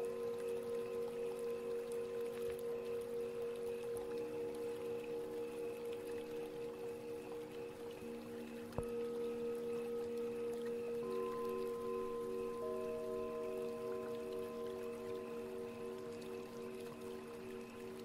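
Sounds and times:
singing bowls ringing: 0.0s - 18.0s.

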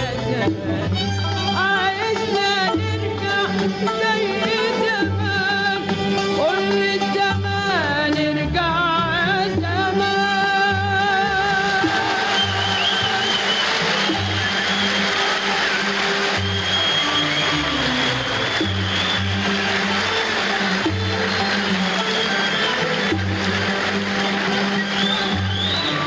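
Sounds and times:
orchestra playing melodic line: 11.6s - 26.0s.

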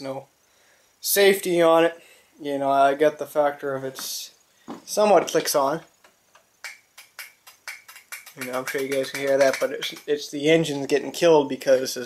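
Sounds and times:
faint electrical clicks: 3.9s - 10.3s.

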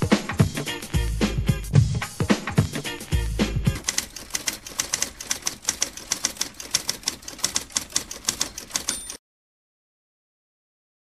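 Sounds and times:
typewriter keys clacking: 3.7s - 9.2s.

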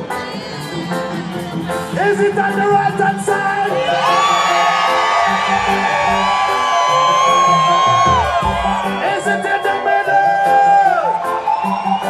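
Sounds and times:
live reggae band playing: 0.0s - 12.0s
crowd cheering and whooping: 3.5s - 12.0s.

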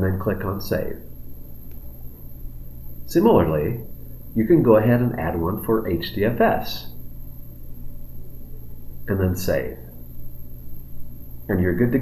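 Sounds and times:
faint hiss: 0.0s - 12.0s
steady low hum: 0.0s - 12.0s
thin high whine: 0.0s - 12.0s.

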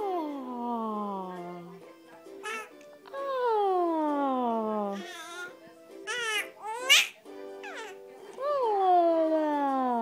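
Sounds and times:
faint music tune: 0.0s - 10.0s
baby squealing happily: 6.1s - 8.0s.

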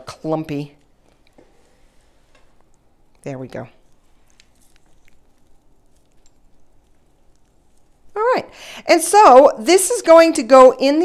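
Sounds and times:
spice ticking on foil: 2.5s - 8.6s.

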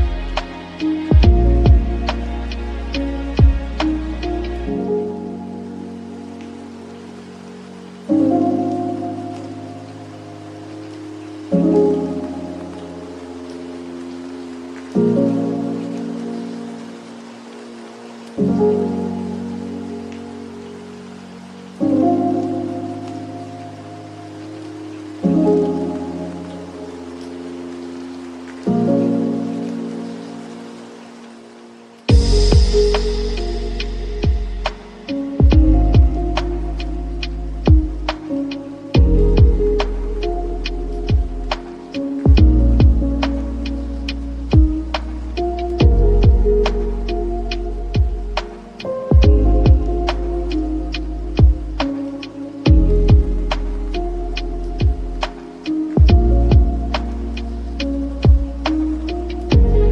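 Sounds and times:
soft keyboard chords: 0.0s - 59.9s
steady soft hiss: 0.0s - 59.9s.

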